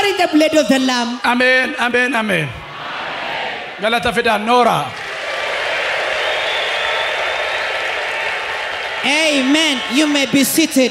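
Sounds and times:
crowd applauding: 0:04.9 - 0:10.9.

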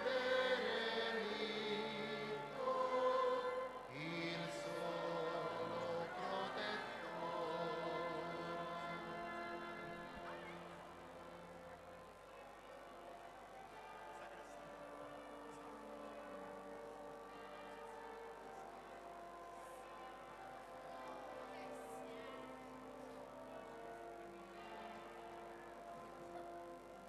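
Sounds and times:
choir singing held chords: 0:00.0 - 0:11.8.

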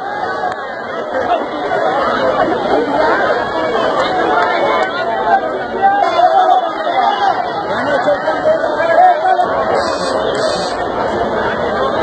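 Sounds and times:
crowd talking loudly: 0:00.0 - 0:12.0.

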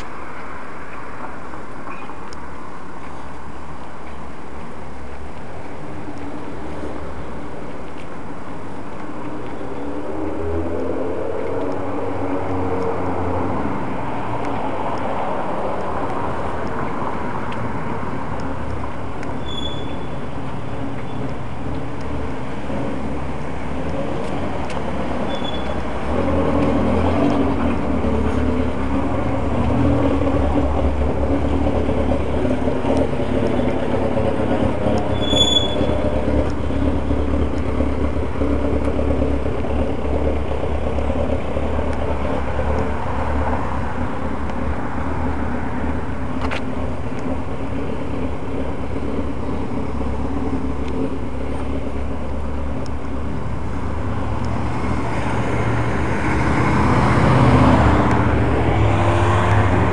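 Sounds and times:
car engine and tyre hum: 0:00.0 - 0:59.9.

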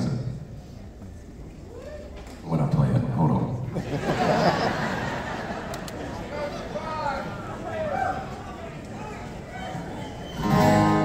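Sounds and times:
low crowd background: 0:00.0 - 0:11.0.

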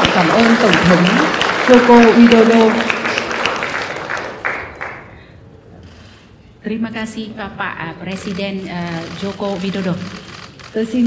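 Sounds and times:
applause: 0:00.0 - 0:05.4.

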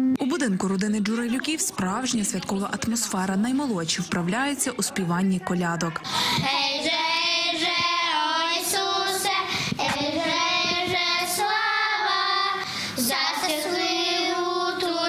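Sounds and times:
girls singing a carol: 0:06.2 - 0:15.0.

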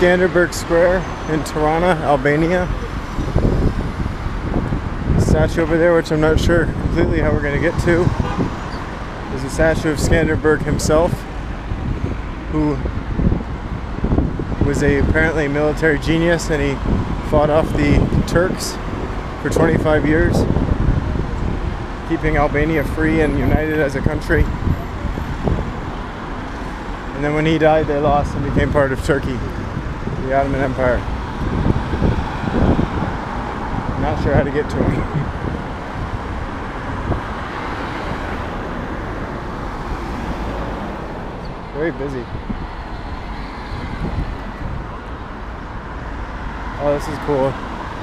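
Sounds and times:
cars driving past: 0:00.0 - 0:48.0
wind buffeting microphone: 0:00.0 - 0:48.0.

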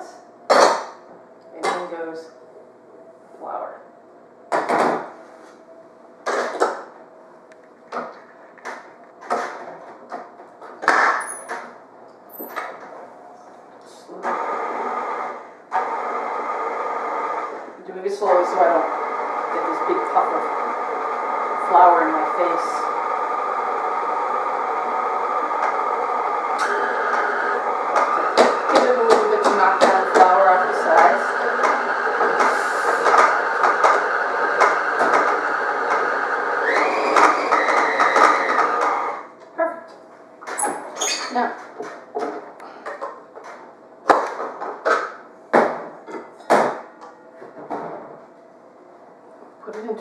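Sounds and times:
stand mixer motor running: 0:14.3 - 0:17.7, 0:18.8 - 0:39.3.

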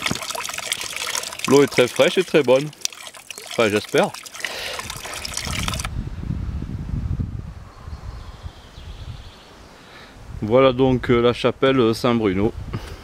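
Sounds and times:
water trickling into stone basin: 0:00.0 - 0:05.9.

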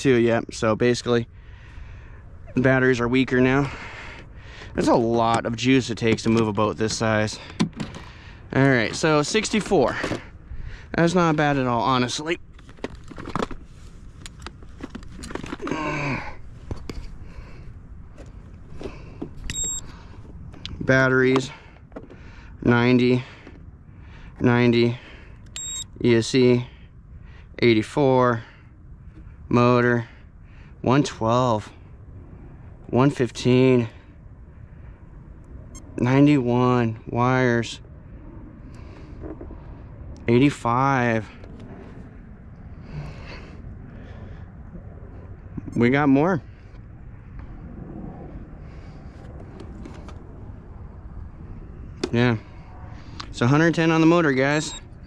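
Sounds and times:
high electronic beep: 0:19.5 - 0:19.8, 0:25.6 - 0:25.9, 0:54.6 - 0:54.8
wind rumble on microphone: 0:27.0 - 0:55.0.

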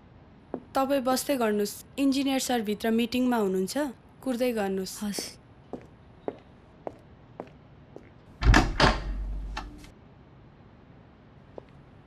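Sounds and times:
faint footsteps: 0:00.5 - 0:00.8, 0:05.0 - 0:08.3, 0:11.6 - 0:11.8
door slamming shut: 0:08.4 - 0:09.3.

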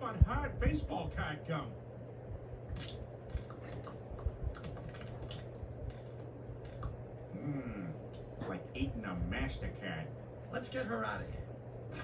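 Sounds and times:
cartoon gum chewing crunches: 0:02.8 - 0:07.0.

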